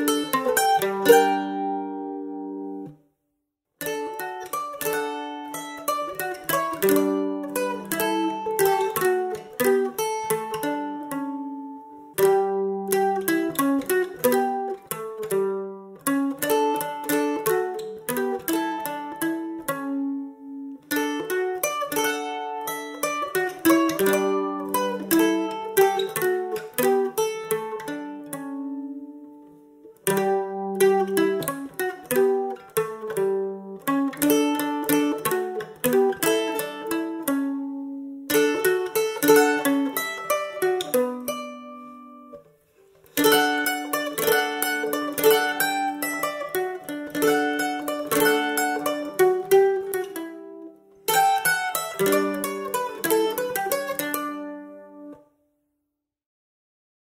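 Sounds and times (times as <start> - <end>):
mandolin folk melody: 0.0 - 3.1, 3.8 - 55.5.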